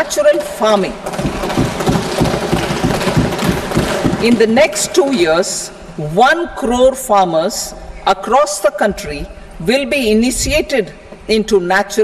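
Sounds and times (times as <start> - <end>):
people thumping desks: 0.3 - 5.4.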